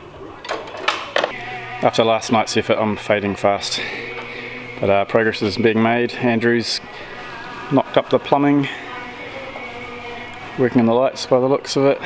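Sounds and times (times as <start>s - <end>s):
man speaking: 1.8s - 3.9s, 4.8s - 6.8s.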